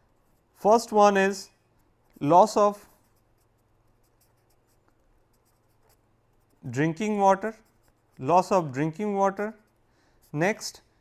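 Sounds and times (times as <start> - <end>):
pen scratching on paper: 0.0 - 0.9, 1.8 - 10.8.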